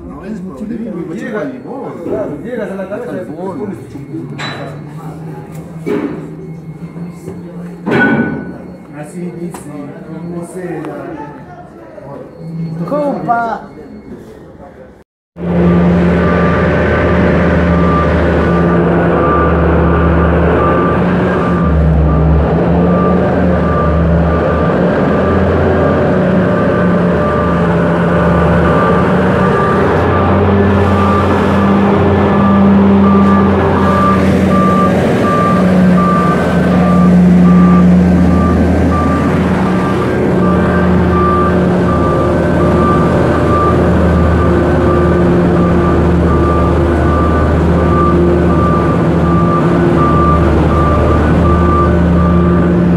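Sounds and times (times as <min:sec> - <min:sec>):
heavy vehicle engine running: 0:00.0 - 0:09.0, 0:15.4 - 0:52.9
reversing alarm beeping: 0:00.0 - 0:11.3, 0:12.0 - 0:52.9.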